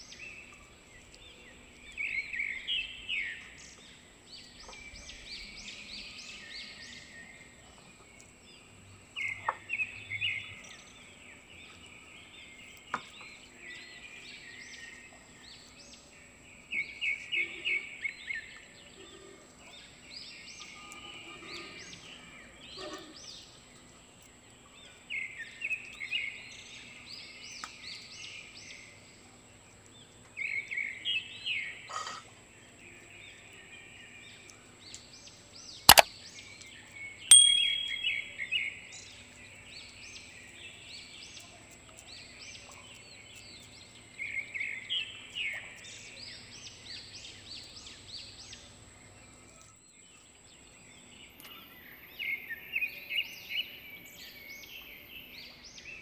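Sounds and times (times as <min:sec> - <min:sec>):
birds chirping: 0:36.8 - 0:41.2
sharp click: 0:37.3 - 0:38.2.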